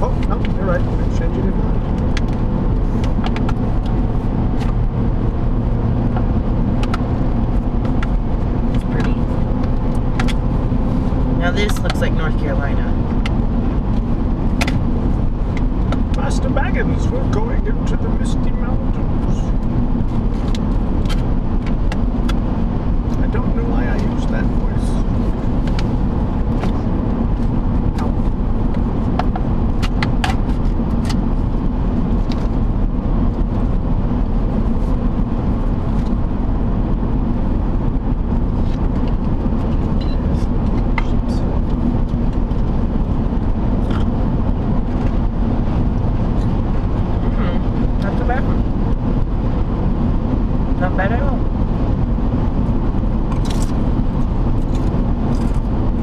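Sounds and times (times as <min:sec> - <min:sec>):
car road and engine noise: 0:00.0 - 0:56.0.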